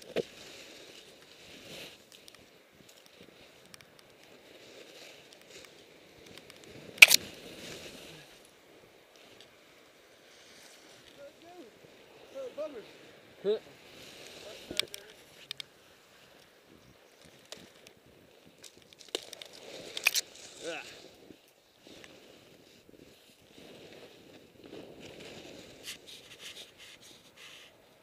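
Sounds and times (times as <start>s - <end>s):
scraping and crunching in snow: 0.0s - 28.0s.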